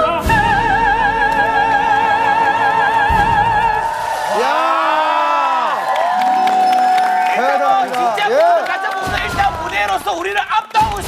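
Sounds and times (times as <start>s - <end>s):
music: 0.0s - 4.3s
audience clapping: 1.2s - 11.0s
studio audience cheering: 2.3s - 11.0s.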